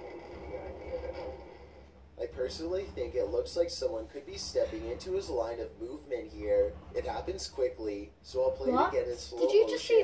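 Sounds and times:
muffled television audio: 0:00.0 - 0:10.0.

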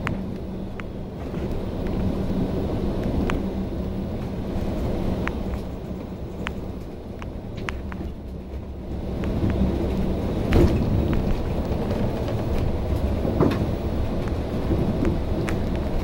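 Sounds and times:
bus engine and road rumble: 0:00.0 - 0:16.0
bodywork rattles and knocks: 0:07.5 - 0:16.0.

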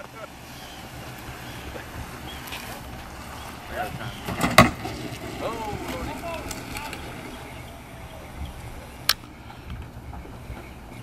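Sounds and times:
faint outdoor voices: 0:00.0 - 0:11.0
wind noise on microphone: 0:03.7 - 0:11.0.

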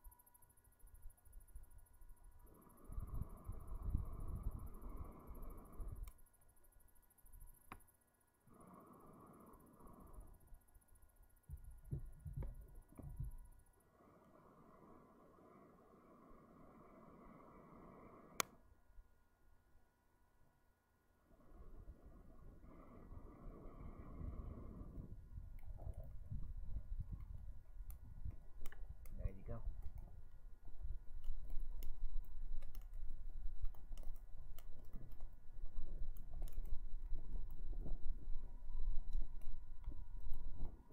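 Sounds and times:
low steady rumble: 0:00.0 - 0:07.7, 0:08.3 - 0:40.9
tinder crackling with sharp snaps: 0:01.8 - 0:06.3, 0:07.4 - 0:10.5, 0:12.3 - 0:18.7, 0:21.4 - 0:40.9.

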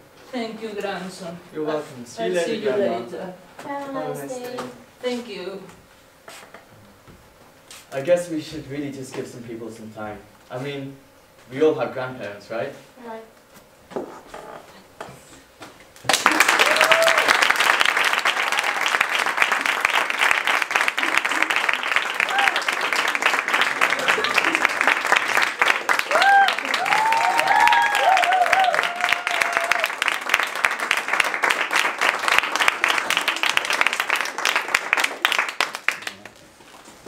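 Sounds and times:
audience applauding: 0:16.0 - 0:36.4.

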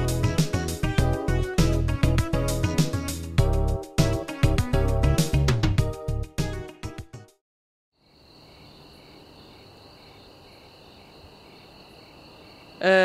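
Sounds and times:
background music: 0:00.0 - 0:07.4
crickets chirping: 0:08.0 - 0:13.0
person speaking: 0:12.8 - 0:13.0.

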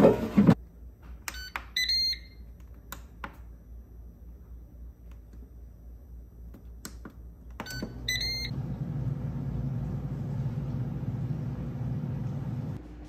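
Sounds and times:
air fryer fan humming: 0:07.6 - 0:13.0.

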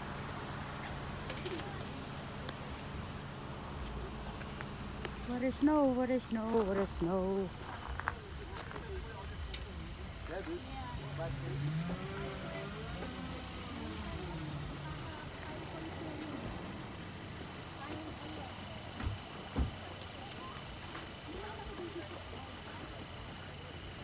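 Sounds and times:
people talking: 0:01.3 - 0:02.8, 0:05.2 - 0:24.0.

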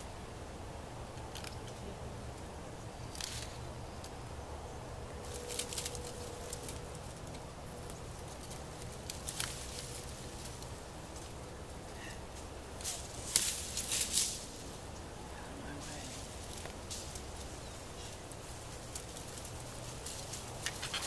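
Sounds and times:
branches rustling: 0:01.0 - 0:04.3, 0:05.0 - 0:21.0.

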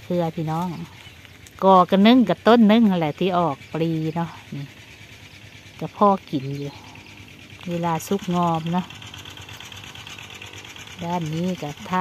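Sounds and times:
distant tractor engine running: 0:00.0 - 0:12.0.

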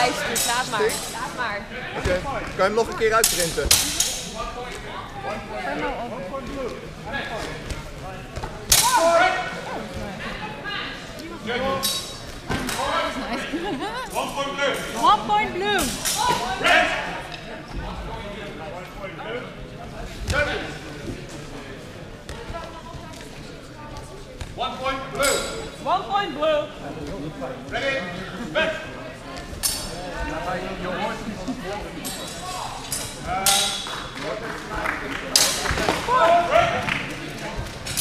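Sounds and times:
chatter in a hall: 0:00.0 - 0:38.0.

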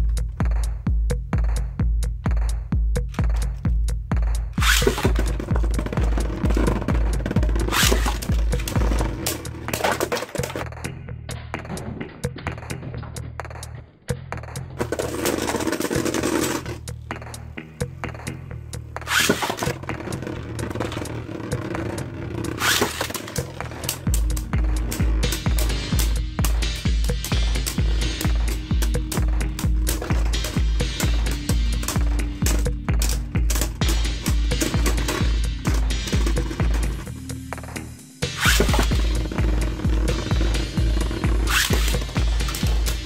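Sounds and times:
music with thumping beat: 0:00.0 - 0:43.0
ripcord launcher zipping rasp: 0:04.6 - 0:05.1, 0:07.6 - 0:08.8, 0:19.0 - 0:19.8, 0:21.8 - 0:32.7, 0:38.3 - 0:39.2, 0:41.3 - 0:42.7
spinning top whirring: 0:19.0 - 0:37.2, 0:38.2 - 0:43.0.

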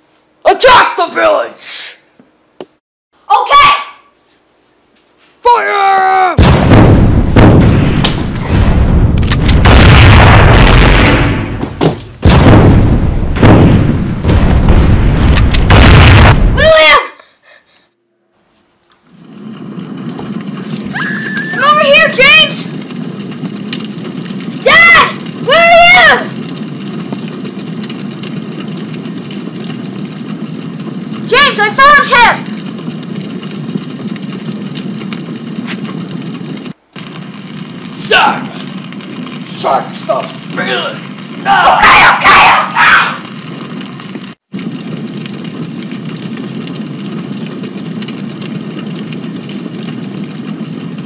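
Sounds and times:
hissing fire: 0:05.4 - 0:17.7, 0:19.0 - 0:51.0
loud explosion blasts: 0:06.4 - 0:16.7
high wavering cries: 0:20.8 - 0:22.0.

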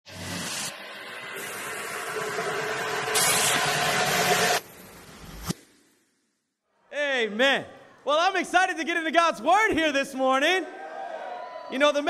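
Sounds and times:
sharp hit: 0:00.1 - 0:05.8.

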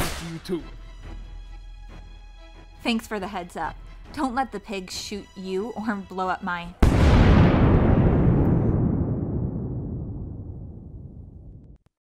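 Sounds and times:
explosion boom and rumble: 0:06.8 - 0:11.8.

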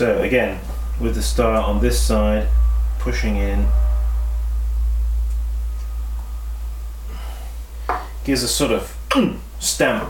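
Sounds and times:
steady low hum: 0:00.0 - 0:10.0
soft breath: 0:07.0 - 0:08.2.

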